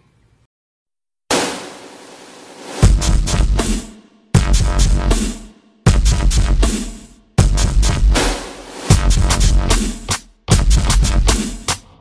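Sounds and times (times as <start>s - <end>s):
loud bang-like hit: 1.3s - 5.4s, 8.1s - 9.1s.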